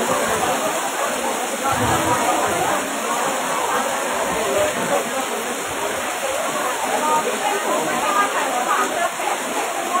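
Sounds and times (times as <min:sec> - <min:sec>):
heavy rain: 0:00.0 - 0:10.0
many voices talking: 0:00.0 - 0:10.0.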